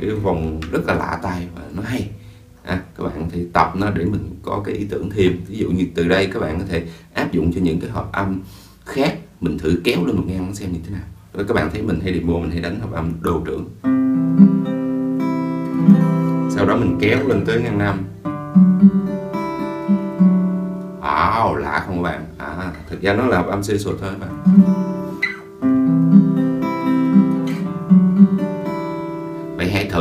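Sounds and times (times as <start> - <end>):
acoustic guitar chord plucked: 0.0 - 4.2, 13.4 - 30.0
man's voice: 0.0 - 13.8, 16.5 - 18.2, 21.0 - 24.4, 29.6 - 30.0.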